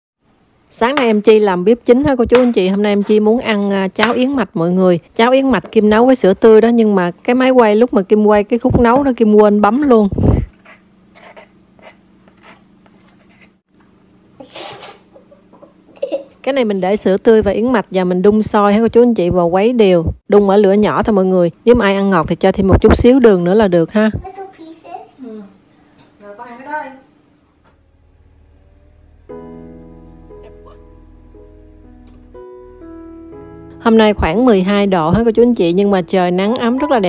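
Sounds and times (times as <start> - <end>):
low steady hum: 25.2 - 37.0.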